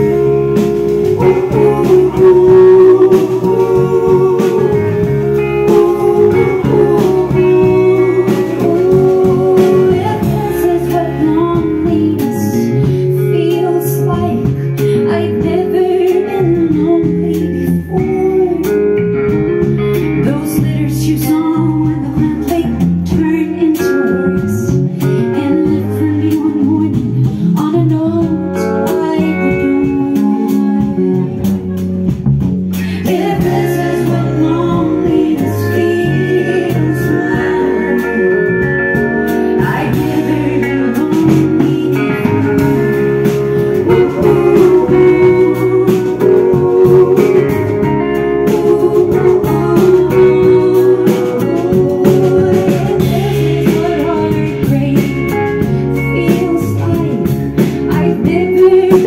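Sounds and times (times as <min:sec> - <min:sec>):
person singing: 0:00.0 - 0:19.2, 0:19.9 - 0:32.0, 0:32.7 - 0:59.0
folk band guitars: 0:00.0 - 0:59.0.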